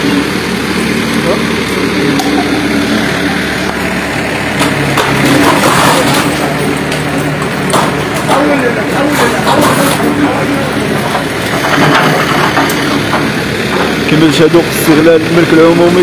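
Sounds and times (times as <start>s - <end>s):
diesel engine running: 0.0s - 16.0s.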